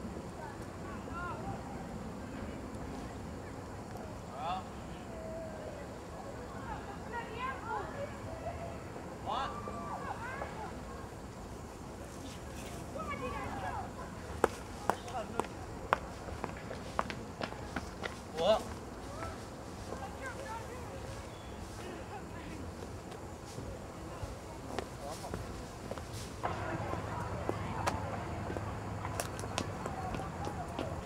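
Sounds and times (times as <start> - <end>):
low outdoor rumble: 0.0 - 31.0
footsteps on stone steps: 14.4 - 20.1, 24.7 - 26.5, 27.4 - 31.0
boot footsteps on pavement: 27.4 - 31.0.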